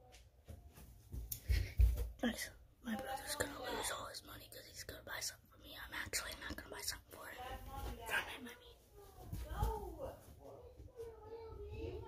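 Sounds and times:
child whispering: 2.2s - 9.2s
quiet speech: 2.2s - 12.0s.

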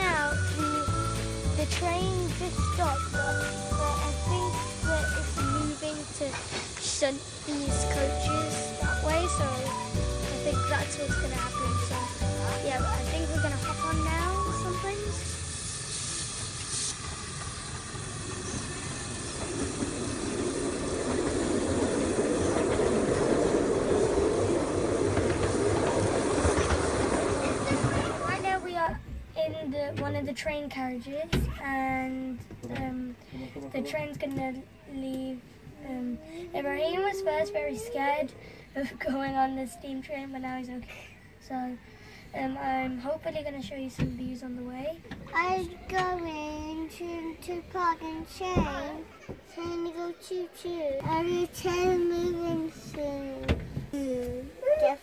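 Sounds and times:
background music with steady beat: 0.0s - 5.7s, 7.7s - 15.5s
steam train running past: 0.0s - 28.9s.

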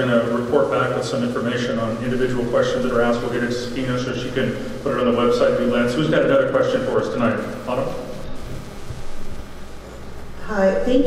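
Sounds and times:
large room noise: 0.0s - 11.0s.

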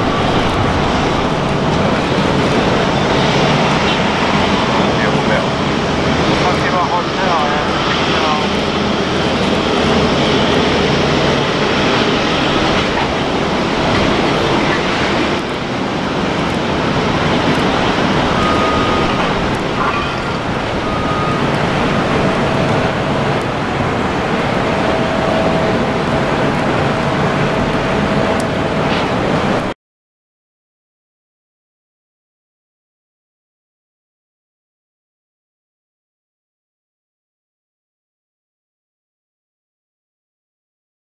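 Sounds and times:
jet airliner taxiing: 0.0s - 29.8s.

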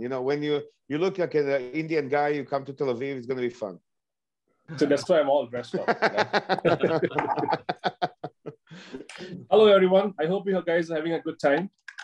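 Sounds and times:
man laughing: 5.7s - 8.7s.

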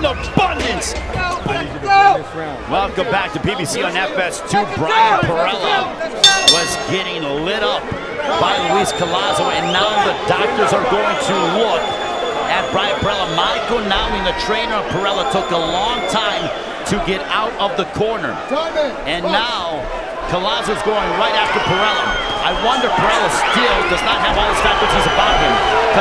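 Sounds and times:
crowd talking: 0.0s - 26.0s.

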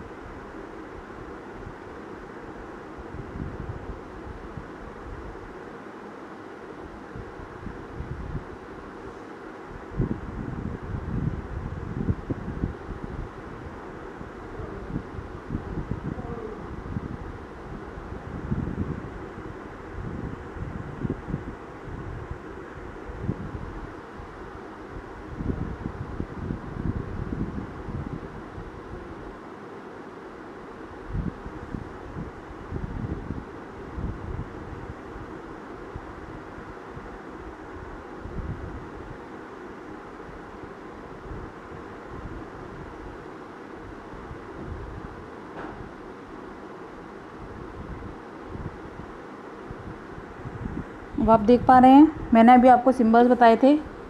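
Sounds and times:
wind buffeting microphone: 7.1s - 8.7s, 9.7s - 29.3s, 31.0s - 39.2s, 43.9s - 46.0s, 47.4s - 54.0s.

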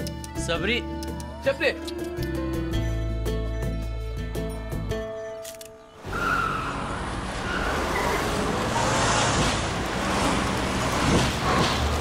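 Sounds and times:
background music: 0.0s - 12.0s
cars speeding past: 6.0s - 12.0s.

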